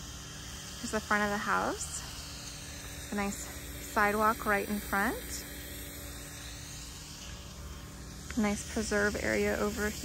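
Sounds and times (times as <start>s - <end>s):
even hiss: 0.0s - 10.0s.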